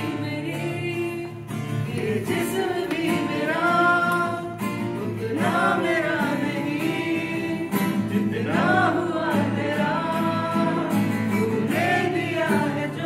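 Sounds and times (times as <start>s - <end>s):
acoustic guitar: 0.0s - 13.0s
person singing: 0.0s - 13.0s.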